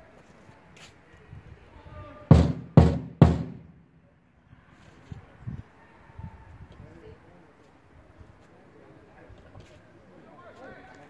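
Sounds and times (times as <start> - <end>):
loud bangs: 2.3 - 4.0.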